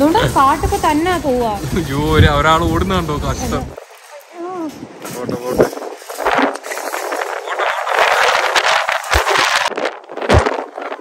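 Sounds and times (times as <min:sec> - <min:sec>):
shopping cart rattling: 0:00.0 - 0:03.7.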